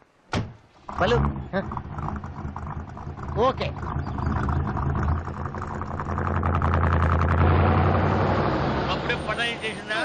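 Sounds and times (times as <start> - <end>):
car engine humming: 0.4 - 10.0.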